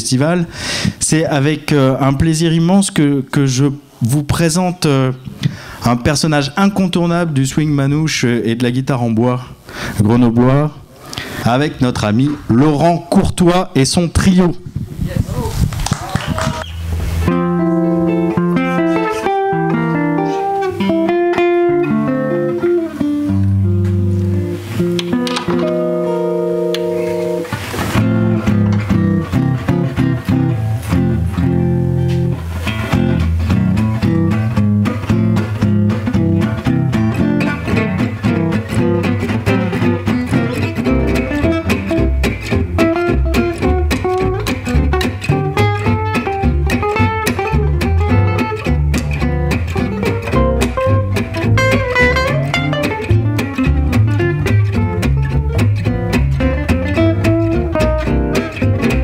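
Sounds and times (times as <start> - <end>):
double bass: 16.5 - 59.0
distorted lead guitar melody: 16.8 - 59.0
strummed acoustic guitar rhythm: 16.8 - 59.0
slow held guitar chords: 17.0 - 59.0.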